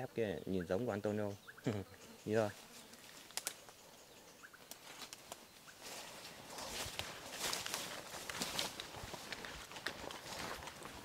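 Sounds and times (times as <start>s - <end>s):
footsteps rustling through undergrowth: 2.4s - 3.8s, 4.4s - 11.0s.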